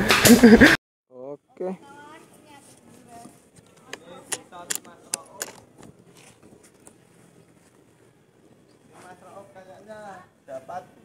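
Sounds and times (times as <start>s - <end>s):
sharp clicks and crackles: 3.6s - 7.0s.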